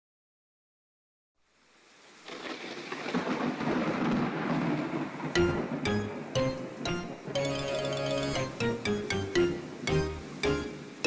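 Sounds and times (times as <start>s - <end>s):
rain: 1.4s - 11.0s
low thunder rumble: 2.3s - 7.6s
sharp synth chords: 5.4s - 11.0s.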